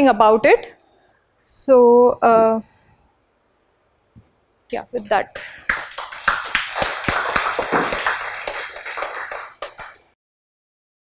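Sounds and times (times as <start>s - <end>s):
audience applauding: 5.3s - 10.2s.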